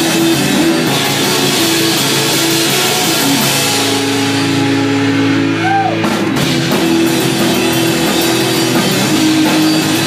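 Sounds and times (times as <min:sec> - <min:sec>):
drums: 0:00.0 - 0:10.0.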